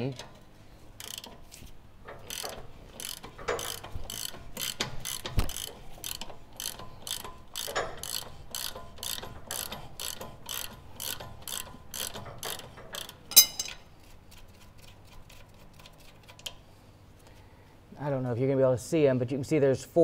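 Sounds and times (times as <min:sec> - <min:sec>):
socket ratchet clicking: 0:02.1 - 0:13.6.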